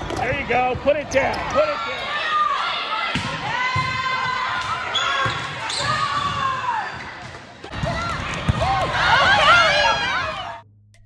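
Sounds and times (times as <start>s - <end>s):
sneakers squealing on hard floor: 4.7s - 10.3s.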